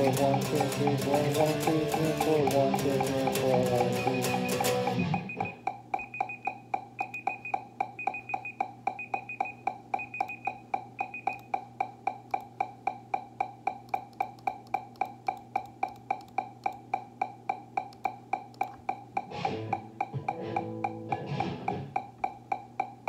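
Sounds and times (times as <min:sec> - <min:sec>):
higher-pitched accent clicks: 0:00.0 - 0:23.0
low steady hum: 0:00.0 - 0:23.0
metronome clicks: 0:00.0 - 0:23.0.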